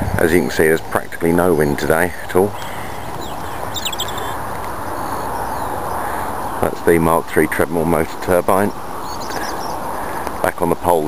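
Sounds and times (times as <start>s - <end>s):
outdoor hiss and rumble: 0.0s - 11.0s
faint bird chirps: 2.5s - 6.7s, 9.0s - 10.2s.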